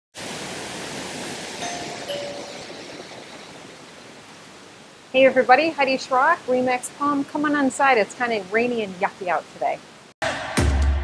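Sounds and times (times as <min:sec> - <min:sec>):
rain hiss: 0:00.2 - 0:10.2
two-note doorbell chime: 0:01.6 - 0:02.8.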